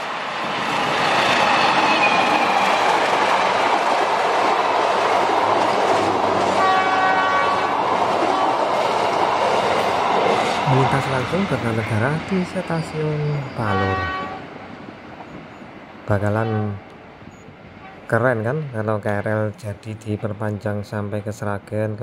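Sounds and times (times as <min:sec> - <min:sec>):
train wheels on rails: 0:00.0 - 0:16.0
train horn: 0:06.5 - 0:08.6, 0:13.6 - 0:14.5.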